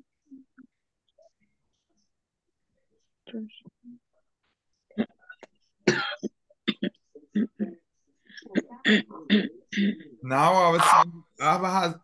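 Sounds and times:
person coughing: 5.8s - 7.5s.

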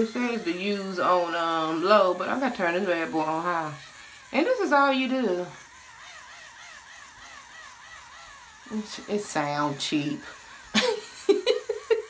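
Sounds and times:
cleansing brush motor whine: 0.0s - 12.0s.

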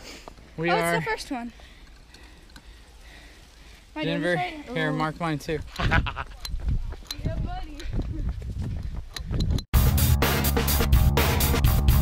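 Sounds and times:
footsteps on dirt path: 0.0s - 9.7s
loud driving music: 9.8s - 12.0s.

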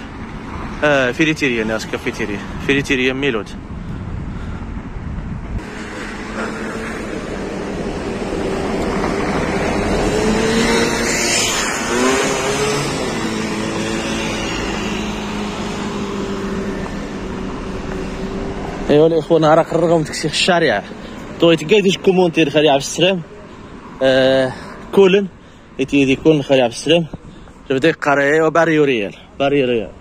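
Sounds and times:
car driving past: 5.6s - 19.0s.

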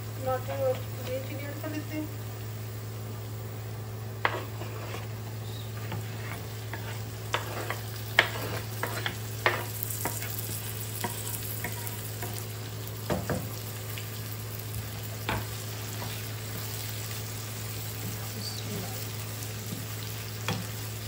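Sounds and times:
onion sizzling in oil: 0.0s - 21.0s.

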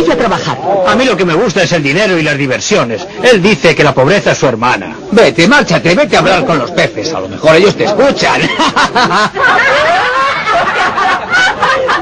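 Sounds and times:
men laughing mockingly: 8.2s - 12.0s.

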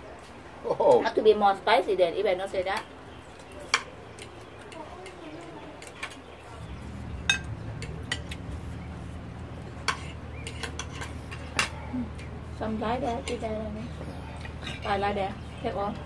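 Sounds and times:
cutlery clinking against plates: 2.7s - 6.3s, 7.2s - 8.6s, 9.7s - 12.3s, 13.0s - 15.1s.

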